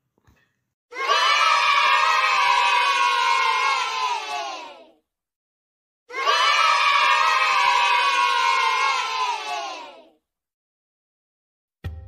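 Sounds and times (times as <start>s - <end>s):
children cheering: 0.9s - 5.0s, 6.1s - 10.1s.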